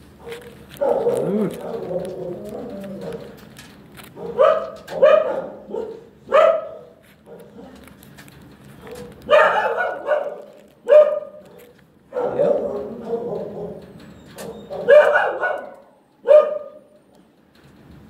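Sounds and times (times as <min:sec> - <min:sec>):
dog barking and yelping: 0:00.2 - 0:03.4, 0:04.1 - 0:07.9, 0:08.8 - 0:17.0.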